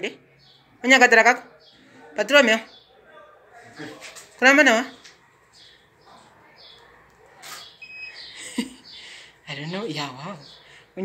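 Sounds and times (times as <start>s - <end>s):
camera focus beep: 7.5s - 8.2s.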